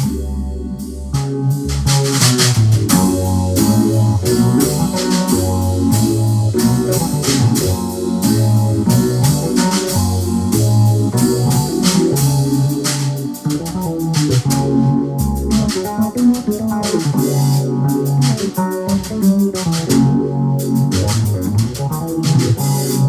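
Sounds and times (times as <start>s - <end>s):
keyboard chords: 0.0s - 23.0s
low bass line: 0.0s - 23.0s.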